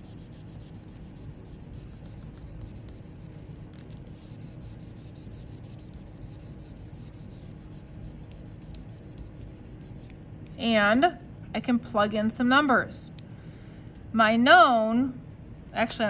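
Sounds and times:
eraser scrubbing plastic sheet: 0:00.0 - 0:10.6.

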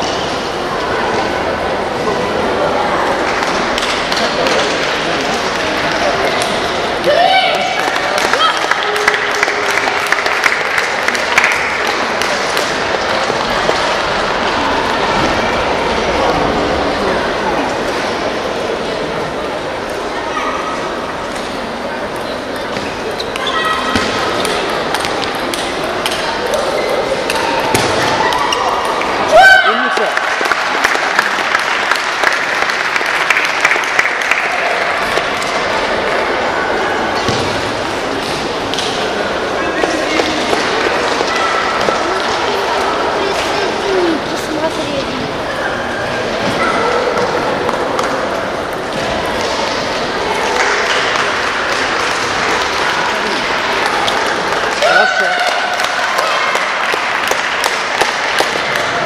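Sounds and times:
murmur of spectators talking: 0:00.0 - 0:59.0.

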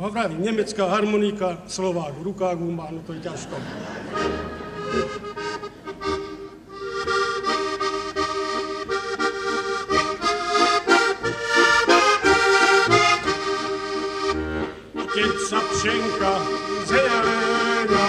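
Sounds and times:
button accordion folk melody: 0:04.0 - 0:18.0.

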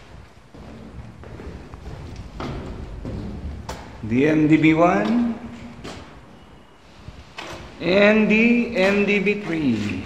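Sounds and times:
soft thuds of footsteps: 0:00.0 - 0:04.1.

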